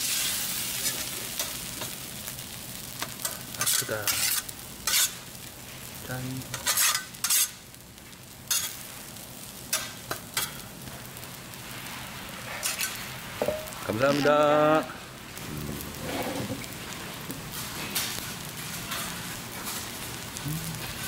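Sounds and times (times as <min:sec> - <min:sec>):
hot plate sizzling: 0:00.0 - 0:21.0
metal spatulas scraping griddle: 0:03.2 - 0:05.2, 0:06.5 - 0:07.6, 0:08.5 - 0:08.8, 0:12.4 - 0:13.1, 0:16.0 - 0:16.7.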